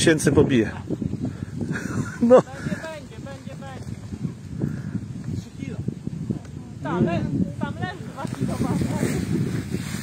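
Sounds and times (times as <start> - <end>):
people talking indistinctly: 0.0 - 9.6.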